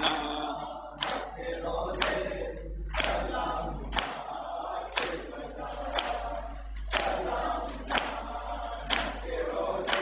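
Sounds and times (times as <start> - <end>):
male voices chanting: 0.0 - 10.0
men slapping their chests: 1.0 - 10.0.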